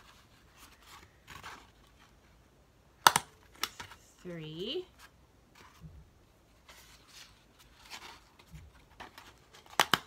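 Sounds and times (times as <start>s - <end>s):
paper rustling: 0.0s - 2.5s, 4.9s - 10.0s.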